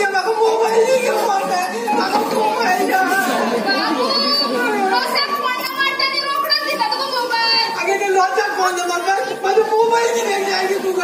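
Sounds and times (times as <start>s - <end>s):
children's voices: 0.0s - 7.9s
amplified speech over loudspeakers: 0.0s - 11.0s
audience chatter: 0.0s - 11.0s.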